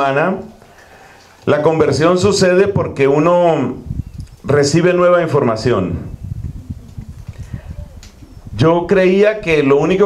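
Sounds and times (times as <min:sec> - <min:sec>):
breath on microphone: 0:00.6 - 0:01.4, 0:07.2 - 0:08.0
microphone handling thumps: 0:05.8 - 0:08.7.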